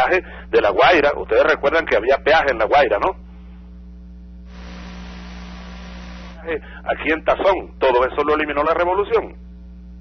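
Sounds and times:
mains hum: 0:00.0 - 0:10.0
telephone line hiss: 0:04.4 - 0:06.8.

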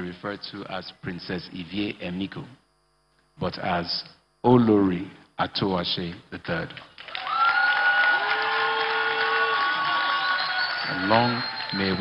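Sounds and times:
audience applauding and cheering: 0:07.0 - 0:12.0
high-pitched held notes: 0:09.8 - 0:12.0.

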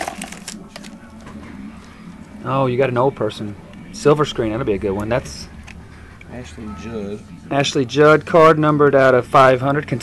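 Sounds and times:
foil wrapper crackling: 0:00.0 - 0:01.2
cards being handled: 0:00.0 - 0:02.0.

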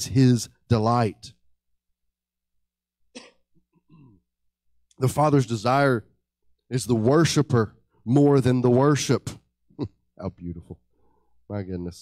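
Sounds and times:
man coughing: 0:03.2 - 0:04.2.

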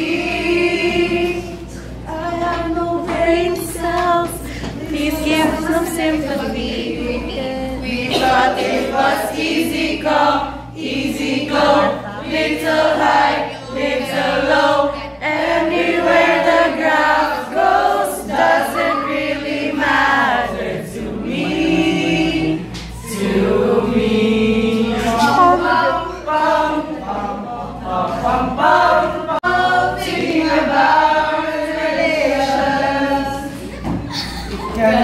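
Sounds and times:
group singing in chorus: 0:00.0 - 0:35.0.

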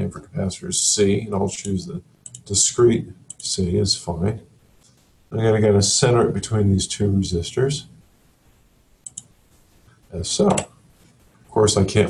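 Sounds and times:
faint room hiss: 0:00.0 - 0:12.0
computer mouse clicks: 0:01.6 - 0:02.5, 0:03.3 - 0:03.5, 0:09.0 - 0:09.4.

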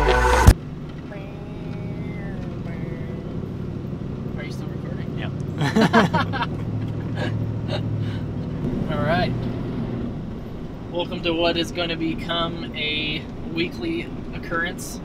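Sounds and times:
intro music: 0:00.0 - 0:00.6
truck engine and road hum: 0:00.0 - 0:15.0.

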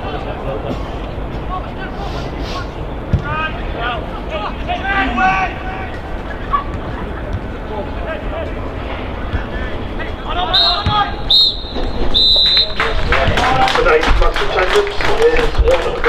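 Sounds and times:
people shouting: 0:04.4 - 0:06.0
referee's whistle blasts: 0:10.4 - 0:12.9.

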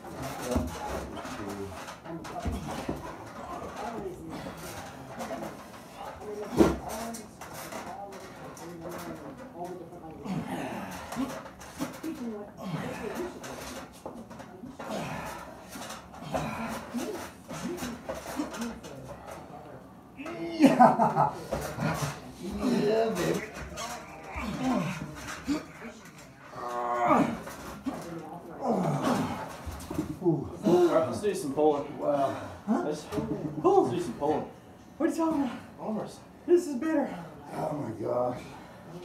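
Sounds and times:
low indistinct men's voices: 0:00.0 - 0:39.0.

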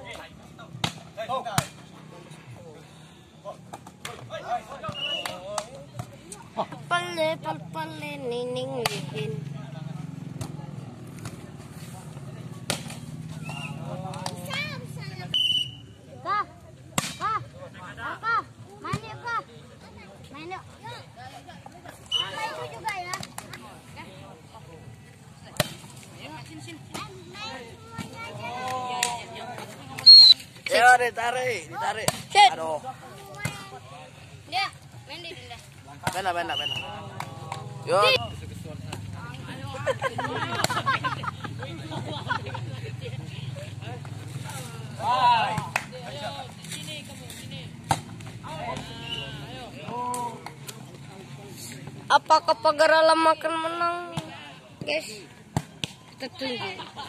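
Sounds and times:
people calling and shouting: 0:00.0 - 0:57.0
hand slapping volleyball: 0:00.8 - 0:01.8, 0:04.8 - 0:06.4, 0:08.8 - 0:09.1, 0:12.6 - 0:14.6, 0:16.9 - 0:17.4, 0:22.7 - 0:23.7, 0:28.0 - 0:29.2, 0:45.4 - 0:46.0, 0:55.5 - 0:56.1.

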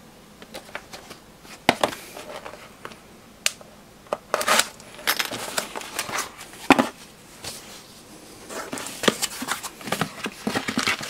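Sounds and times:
cardboard scraping and rustling: 0:04.3 - 0:11.0.

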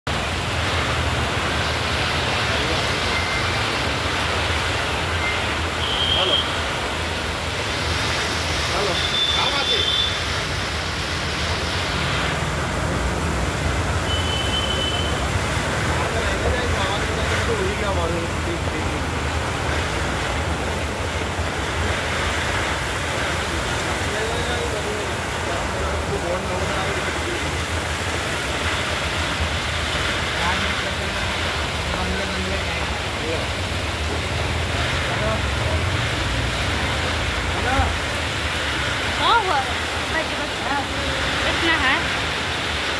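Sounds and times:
cars driving through water: 0:00.1 - 0:42.9
heavy rain pouring: 0:00.1 - 0:42.9.

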